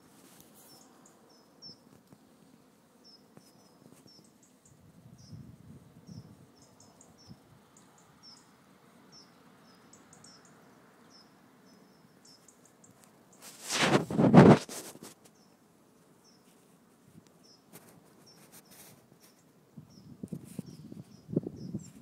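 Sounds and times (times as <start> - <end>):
faint high-pitched chirps: 9.1 - 13.4.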